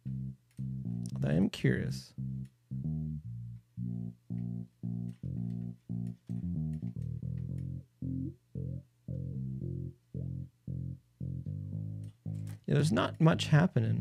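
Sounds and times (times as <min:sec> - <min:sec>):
bass guitar line: 0:00.0 - 0:14.0.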